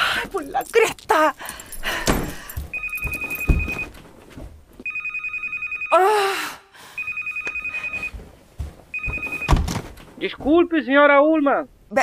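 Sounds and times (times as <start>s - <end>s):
electric doorbell ringing: 4.9s - 5.9s.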